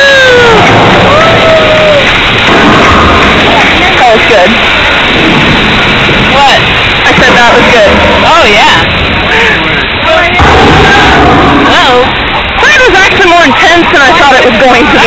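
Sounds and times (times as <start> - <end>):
roller coaster rushing rumble: 0.0 - 15.0
wind on microphone: 0.1 - 13.2.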